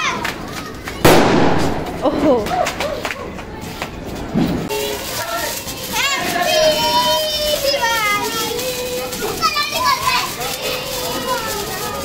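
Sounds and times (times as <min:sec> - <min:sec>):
children shouting and crying: 0:00.0 - 0:04.1, 0:04.7 - 0:12.0.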